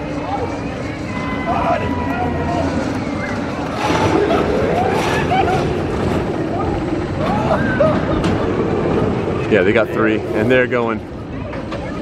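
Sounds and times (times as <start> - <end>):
indistinct voices talking: 0.0 - 12.0
steady low rumbling: 0.0 - 12.0.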